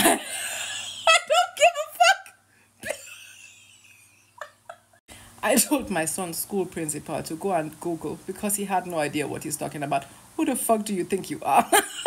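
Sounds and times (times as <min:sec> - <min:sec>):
woman laughing: 0:00.0 - 0:02.1, 0:02.8 - 0:05.0, 0:11.6 - 0:12.0.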